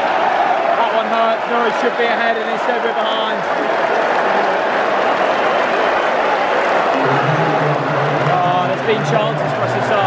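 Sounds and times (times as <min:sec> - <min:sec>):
stadium crowd applause: 0:00.0 - 0:10.0.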